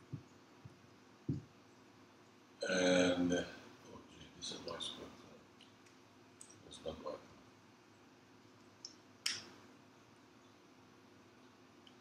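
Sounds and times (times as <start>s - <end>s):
soft low knock: 0.0s - 1.5s.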